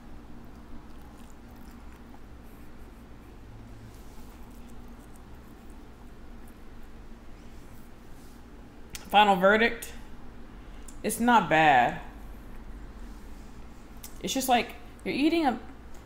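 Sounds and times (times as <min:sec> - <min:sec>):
steady low hum: 0:00.0 - 0:16.0
person chewing: 0:00.3 - 0:03.3.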